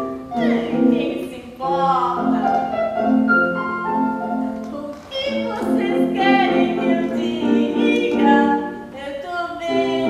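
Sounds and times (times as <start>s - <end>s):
instrumental accompaniment: 0.0s - 10.0s
woman singing: 0.3s - 3.2s, 4.3s - 10.0s.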